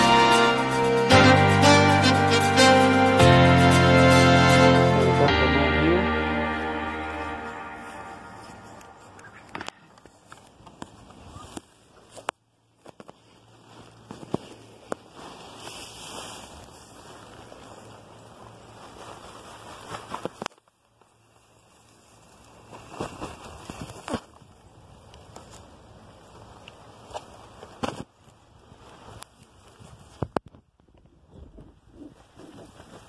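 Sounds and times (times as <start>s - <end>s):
footsteps in dry leaf mulch: 6.2s - 30.2s.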